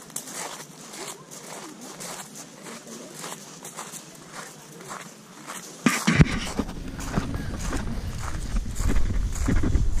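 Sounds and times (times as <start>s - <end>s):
footsteps on pavement: 0.0s - 10.0s
low rumble: 6.4s - 10.0s.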